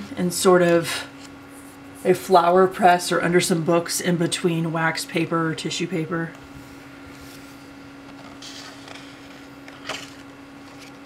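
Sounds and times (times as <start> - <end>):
steady hum: 0.0 - 11.0
book page flipping: 7.1 - 11.0
paper rustle: 7.1 - 11.0.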